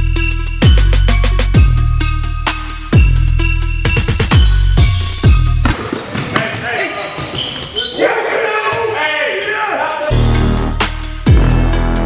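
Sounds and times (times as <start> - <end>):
sneakers squeaking: 4.8 - 10.1
basketball bouncing on hardwood: 5.6 - 6.6
players calling out: 6.3 - 10.2.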